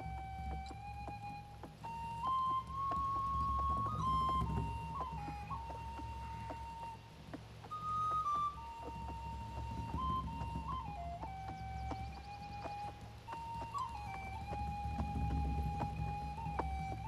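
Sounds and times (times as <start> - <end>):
slow flute melody: 0.0 - 17.0
soft low accompaniment: 0.0 - 17.0.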